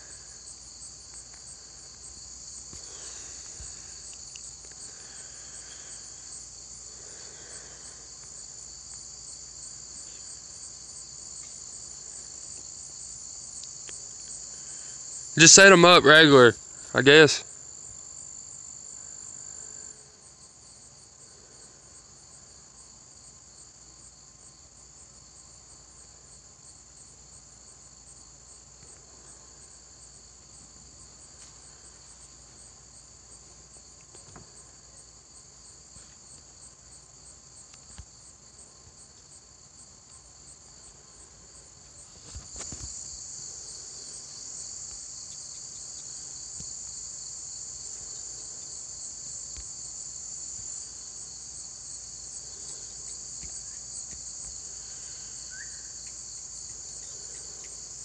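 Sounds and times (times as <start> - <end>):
insects trilling: 0.0 - 58.0.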